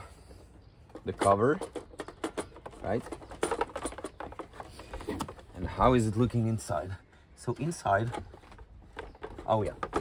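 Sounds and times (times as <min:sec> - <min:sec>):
plastic clicks and knocks: 0:08.0 - 0:10.0.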